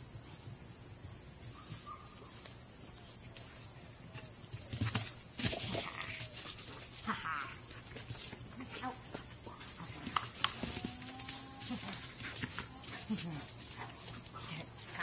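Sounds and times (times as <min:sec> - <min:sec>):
high-pitched insect chorus: 0:00.0 - 0:15.0.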